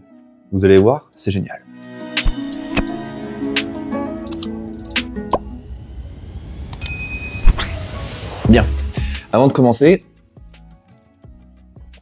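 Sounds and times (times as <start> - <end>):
background music: 0.0 - 12.0
sharp clicks: 4.3 - 4.5
bright ding: 6.8 - 7.6.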